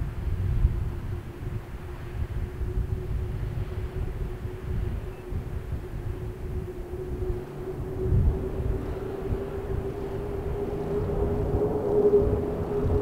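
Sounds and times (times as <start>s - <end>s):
low rumble: 0.0s - 13.0s
turboprop aircraft propeller drone: 0.0s - 13.0s.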